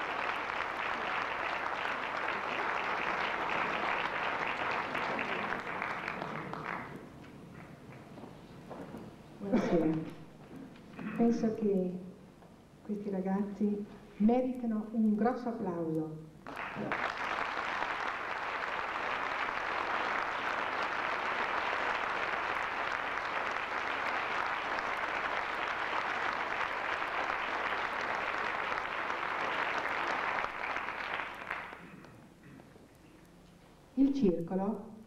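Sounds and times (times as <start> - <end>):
audience applauding: 0.0 - 8.1, 16.4 - 32.2.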